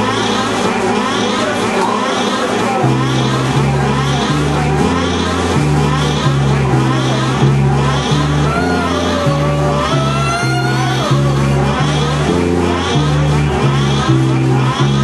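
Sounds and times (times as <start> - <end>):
swirling electronic effects: 0.0 - 15.0
pulsing bass line: 2.8 - 15.0
sliding saxophone lines: 8.4 - 12.5.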